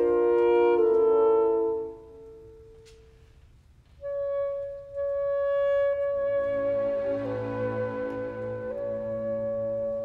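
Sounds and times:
saxophone long high note: 4.0s - 10.0s.

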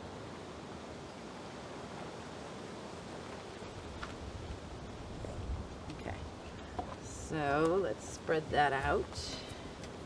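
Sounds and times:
outdoor background hiss: 0.0s - 10.0s
wind rumble on microphone: 0.0s - 10.0s.

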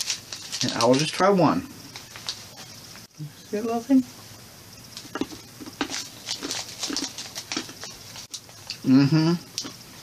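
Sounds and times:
person chewing hard candies: 0.0s - 1.2s, 5.0s - 9.8s.

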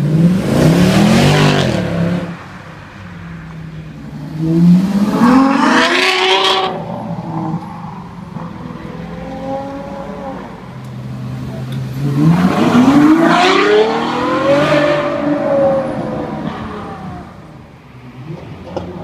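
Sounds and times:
car engines accelerating past: 4.1s - 19.0s.

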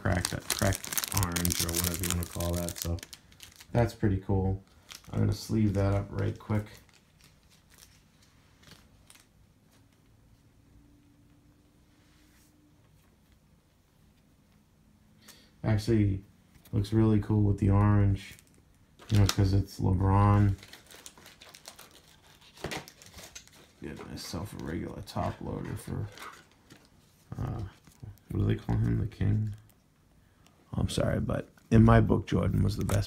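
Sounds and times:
plastic sleeve crinkling: 0.0s - 9.4s, 18.1s - 29.8s
faint steady hum: 0.0s - 33.0s.

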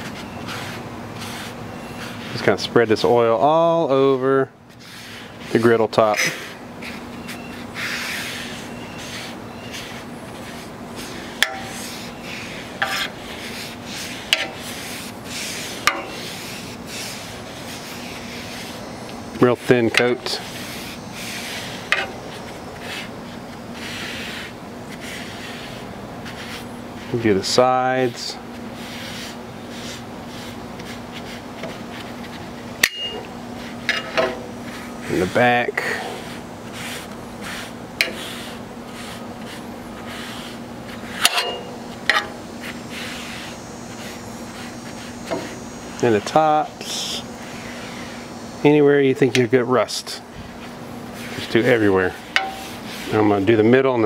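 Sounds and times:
paper towel rubbing on griddle: 0.0s - 54.0s
steady low hum: 0.0s - 54.0s.

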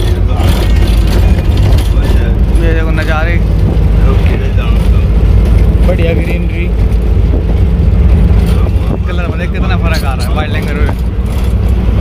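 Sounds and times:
bus engine rumble: 0.0s - 12.0s
road noise: 0.0s - 12.0s
wind through open window: 0.0s - 12.0s.

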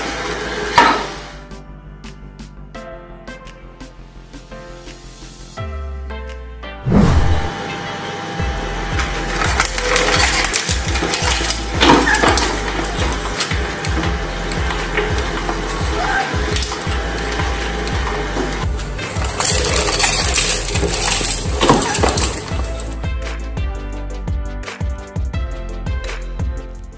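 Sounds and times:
shredder machine drone: 0.0s - 1.4s, 6.9s - 23.0s
background music: 0.1s - 26.9s
shredder crushing plastic crackling: 8.9s - 23.0s.

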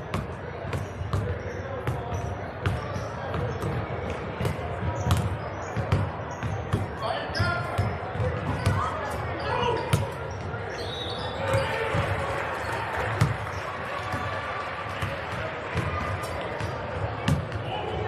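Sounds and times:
people talking: 0.1s - 18.0s
basketballs bouncing on hardwood floor: 15.0s - 17.6s.

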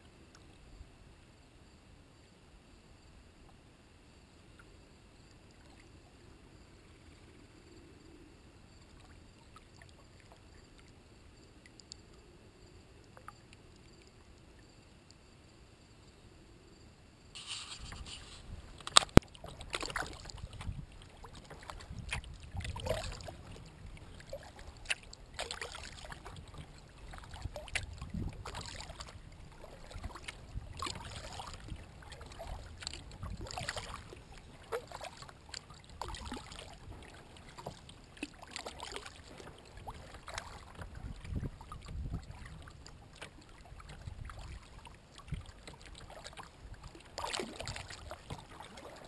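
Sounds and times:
low steady rumble: 0.0s - 38.2s
water lapping at hull: 4.4s - 49.0s
paddle splashes and drips: 4.6s - 6.2s, 8.8s - 12.2s, 17.4s - 49.0s.

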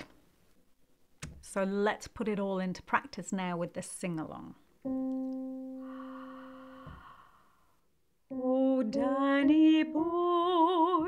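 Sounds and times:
keyboard note: 4.8s - 6.8s
person singing: 8.3s - 11.0s.

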